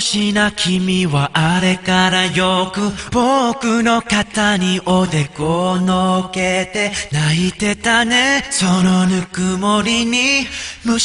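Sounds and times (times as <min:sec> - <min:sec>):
man singing a cappella: 0:00.0 - 0:11.0.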